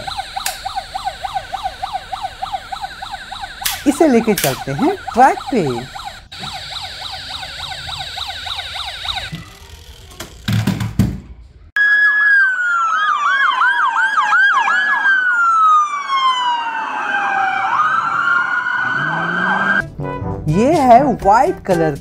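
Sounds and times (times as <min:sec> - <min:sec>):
police sirens: 0:00.0 - 0:09.8, 0:11.8 - 0:19.8
toy police car siren yelping: 0:00.0 - 0:10.0, 0:11.8 - 0:19.8.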